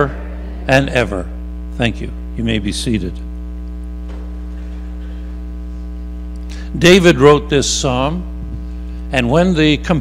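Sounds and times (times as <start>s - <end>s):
speech: 0.0s - 3.3s, 6.8s - 8.3s, 9.1s - 10.0s
electrical mains hum: 0.0s - 10.0s.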